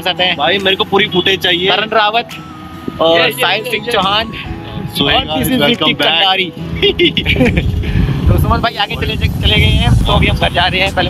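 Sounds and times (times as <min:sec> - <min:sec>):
men chatting: 0:00.0 - 0:11.0.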